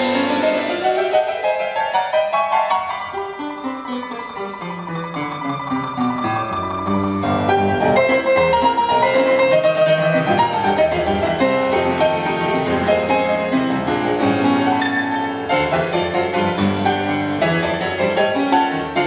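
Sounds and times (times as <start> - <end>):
jazz grand piano: 0.0 - 19.0.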